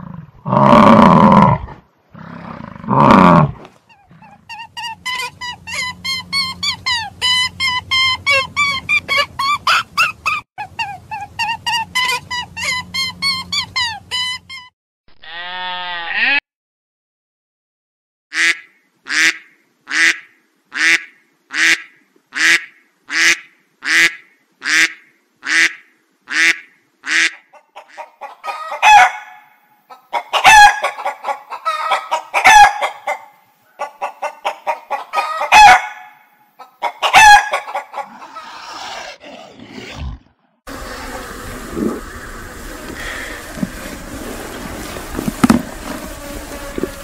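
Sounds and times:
chicken squawking: 3.0s - 14.7s, 26.3s - 40.2s
chicken clucking: 27.5s - 36.0s, 36.6s - 38.6s.

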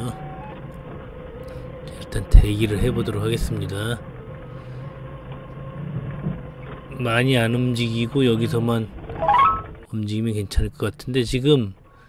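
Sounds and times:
forklift engine running: 0.0s - 9.9s.

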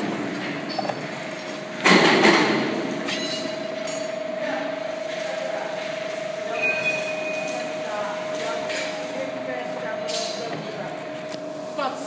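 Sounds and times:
machine humming: 0.0s - 12.0s.

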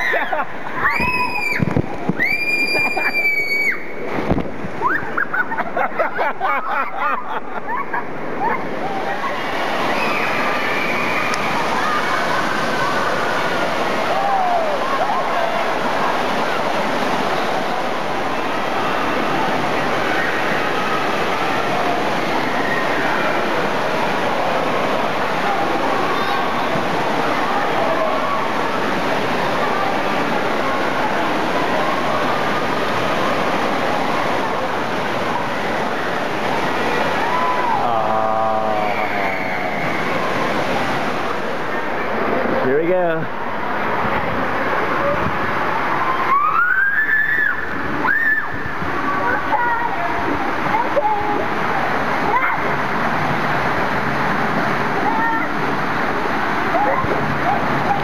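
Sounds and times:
children shouting and chattering: 0.0s - 58.0s
splashing and pouring water: 8.4s - 58.0s.

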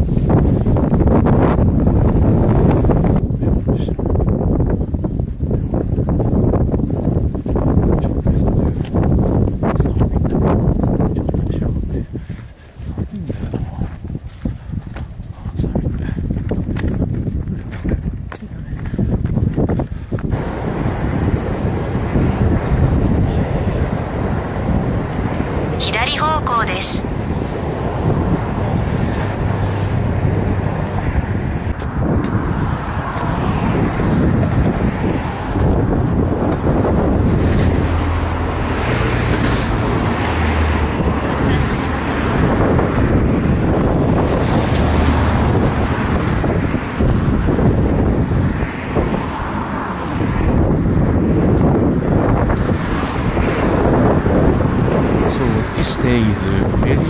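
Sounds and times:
road traffic passing: 0.0s - 57.0s
wind buffeting microphone: 0.0s - 57.0s.

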